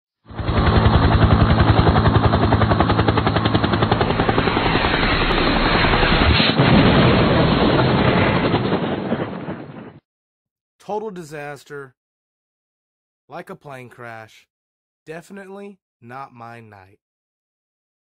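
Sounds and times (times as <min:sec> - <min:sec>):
helicopter rotor chop: 0:00.3 - 0:06.5
sudden loud burst: 0:04.3 - 0:10.0.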